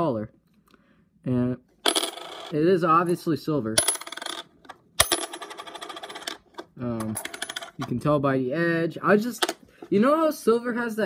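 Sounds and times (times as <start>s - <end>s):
coin rattling on a desk: 1.8s - 2.6s, 3.8s - 7.9s.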